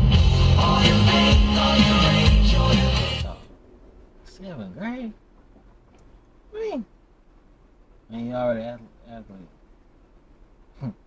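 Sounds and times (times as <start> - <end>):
faint low hum in car: 3.3 - 11.0
man speaking: 4.3 - 5.2, 6.5 - 6.9, 8.1 - 9.6, 10.8 - 11.0.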